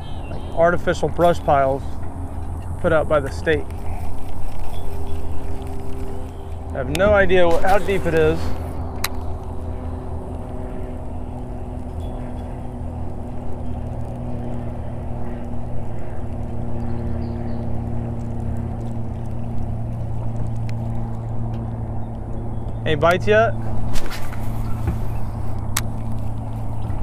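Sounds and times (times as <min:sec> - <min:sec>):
low motor hum: 0:00.0 - 0:27.0.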